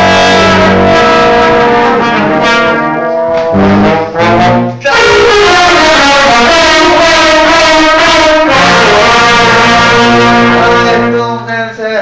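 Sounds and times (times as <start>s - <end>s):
low bass note: 0.0s - 5.8s, 8.6s - 11.6s
brass band held chord: 0.0s - 11.4s.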